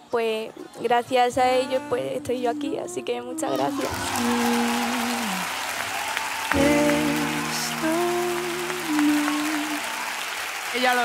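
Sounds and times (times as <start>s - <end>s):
audience applauding: 3.7s - 11.0s
soft background music: 6.5s - 9.7s.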